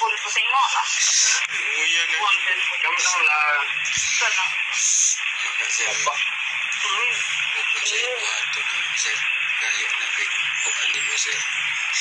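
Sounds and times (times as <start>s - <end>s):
voice through radio: 0.0s - 12.0s
steady hiss: 0.8s - 12.0s.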